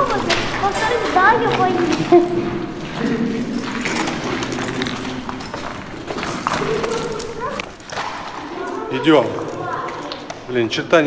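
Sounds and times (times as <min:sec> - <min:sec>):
footsteps on hard floor: 0:00.0 - 0:10.5
people talking indistinctly: 0:00.0 - 0:11.0.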